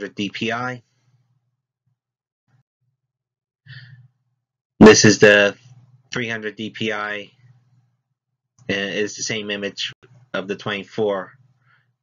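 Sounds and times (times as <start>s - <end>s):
person breathing in: 3.7s - 4.1s
faint low hum: 4.8s - 8.0s, 8.6s - 11.8s.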